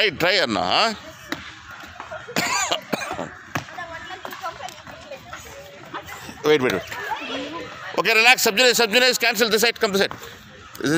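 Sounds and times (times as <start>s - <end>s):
children's voices: 2.1s - 8.0s.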